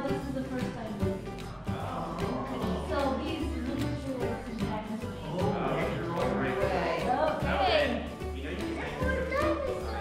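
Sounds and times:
background music with bass: 0.0s - 10.0s
indistinct voices: 0.0s - 10.0s.

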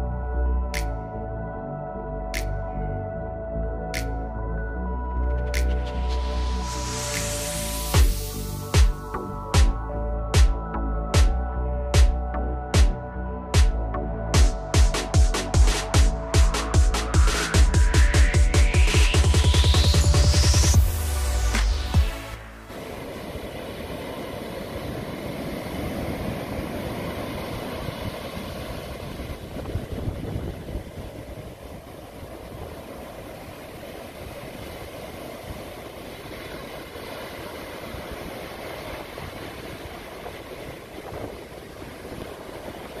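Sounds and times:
waves breaking on sand: 20.9s - 43.0s.

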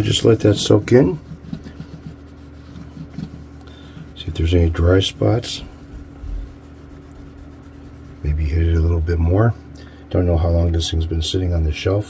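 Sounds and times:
cloth rubbing on bass fretboard: 0.0s - 9.4s.

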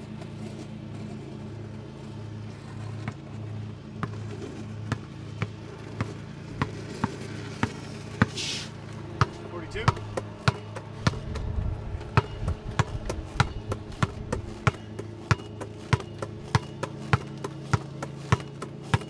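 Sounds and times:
basketball bouncing on asphalt: 0.0s - 19.0s.

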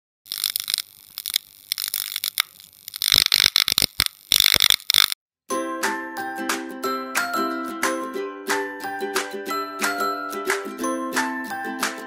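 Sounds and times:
neon sign electric crackle and buzz: 0.3s - 5.2s.

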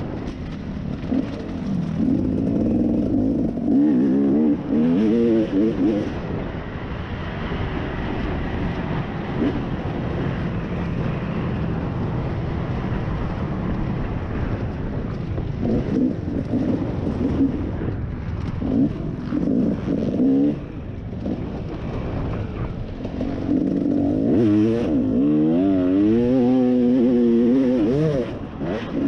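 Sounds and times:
dirt bike engine revving: 1.0s - 6.2s, 23.3s - 29.0s.

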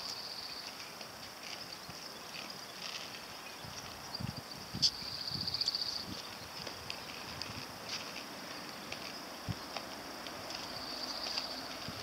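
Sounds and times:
inline skate wheels on asphalt: 0.0s - 12.0s
insects chirring: 0.0s - 12.0s.

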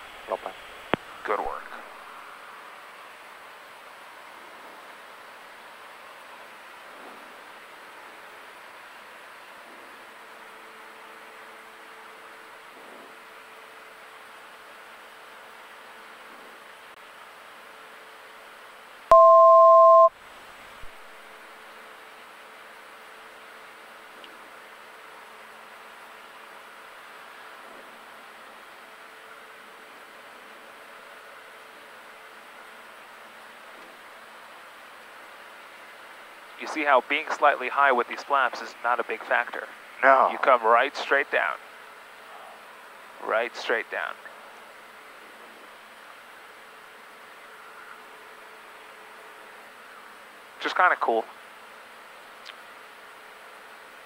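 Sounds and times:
airplane engine and cabin hiss: 0.0s - 3.3s, 36.6s - 47.8s
electronic two-tone beep: 19.1s - 20.1s.

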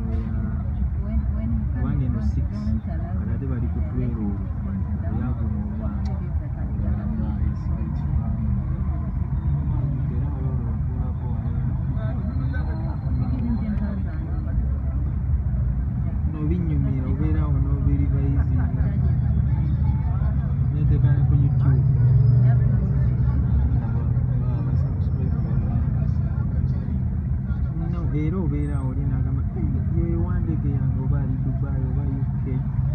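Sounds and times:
indistinct voices talking: 0.0s - 32.9s
traffic rumble from inside vehicle: 0.0s - 32.9s.

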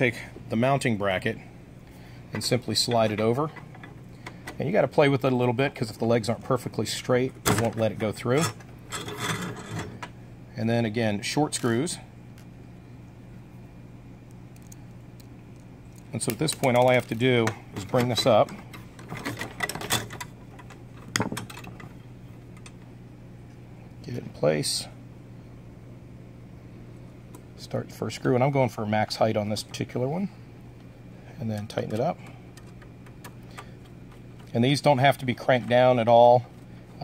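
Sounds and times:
low background hum: 0.0s - 37.0s.

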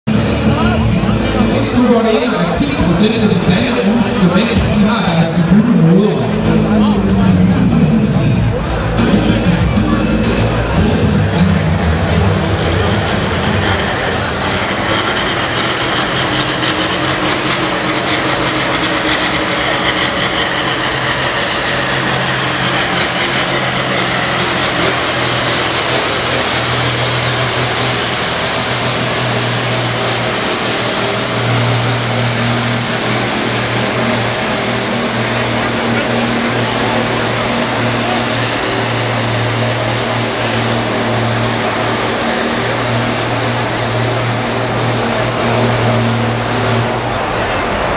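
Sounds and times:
tractor diesel engine straining: 0.0s - 47.9s.

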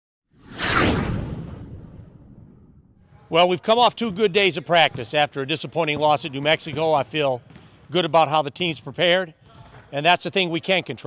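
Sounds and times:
whoosh sound effect: 0.4s - 2.9s
deep rumble: 0.4s - 3.0s.

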